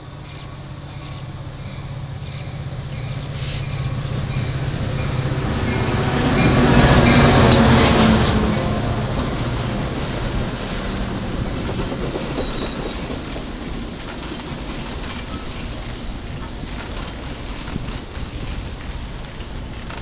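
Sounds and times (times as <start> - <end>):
train rumble and wheel noise: 0.0 - 20.0.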